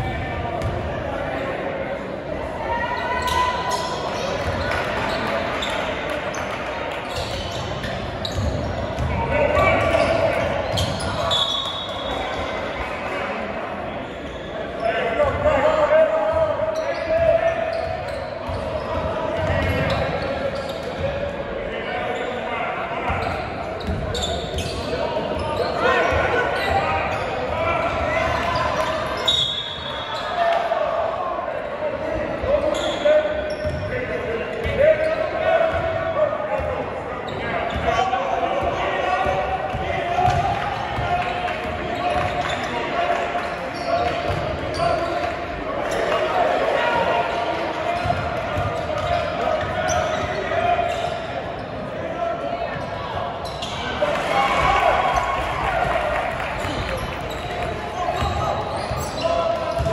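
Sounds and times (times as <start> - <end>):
voices echoing in hall: 0.0 - 59.9.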